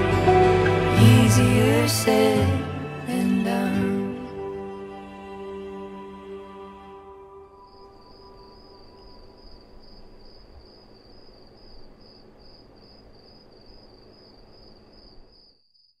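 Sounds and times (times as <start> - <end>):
insect chirping: 7.4 - 16.0.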